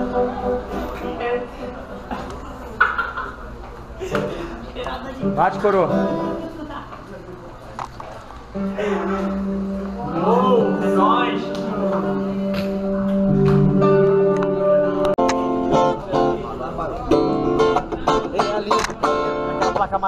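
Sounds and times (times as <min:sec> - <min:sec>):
electric guitar playing: 0:00.0 - 0:02.1, 0:04.9 - 0:06.6, 0:08.5 - 0:20.0.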